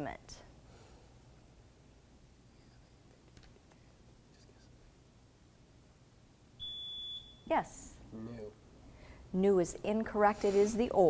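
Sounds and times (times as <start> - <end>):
high-pitched quiz buzzer beep: 6.6 - 7.5.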